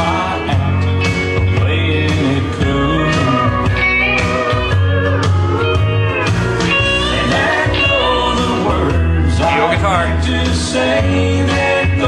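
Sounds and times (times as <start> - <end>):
electric guitar bending lines: 0.0 - 11.0
country song: 0.0 - 12.0.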